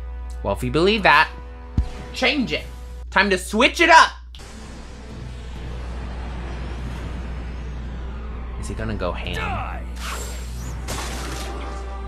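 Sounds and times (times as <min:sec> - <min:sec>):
dramatic build-up rumble with hiss: 0:04.4 - 0:11.5.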